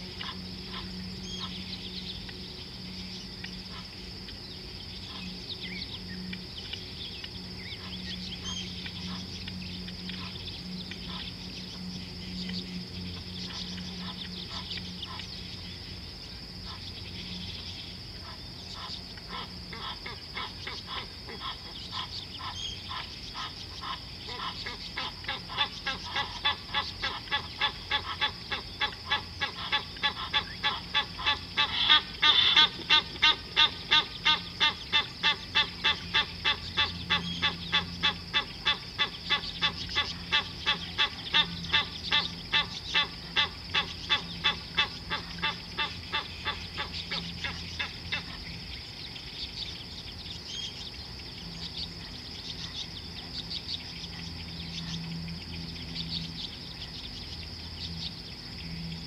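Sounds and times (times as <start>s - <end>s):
animal calling rhythmically: 18.2s - 48.4s.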